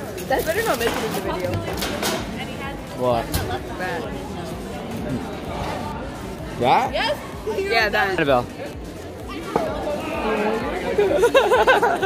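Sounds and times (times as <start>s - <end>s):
background chatter: 0.0s - 12.0s
teenage boy laughing: 10.9s - 12.0s.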